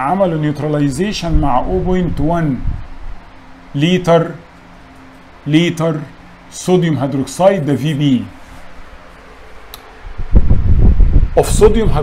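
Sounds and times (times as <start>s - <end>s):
low rumble on microphone: 0.8s - 3.3s, 8.3s - 12.0s.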